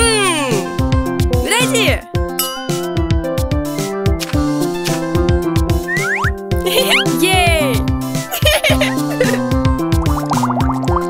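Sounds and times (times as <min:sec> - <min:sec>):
upbeat cartoon music: 0:00.0 - 0:11.0
rising cartoon sound effects: 0:05.9 - 0:07.8.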